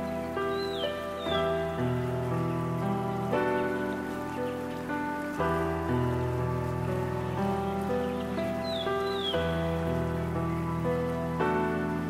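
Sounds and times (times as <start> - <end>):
rain: 0.0 - 12.0
slow relaxation music: 0.0 - 12.0.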